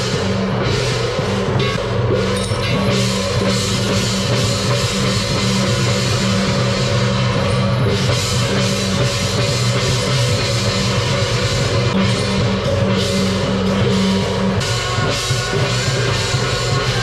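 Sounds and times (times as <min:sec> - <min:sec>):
cymbals: 0:00.0 - 0:17.0
drums: 0:00.0 - 0:17.0
hand gongs: 0:00.0 - 0:17.0.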